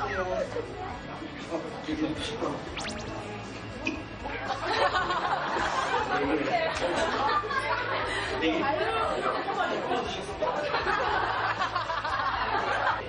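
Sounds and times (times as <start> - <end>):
many voices talking: 0.0 - 13.0.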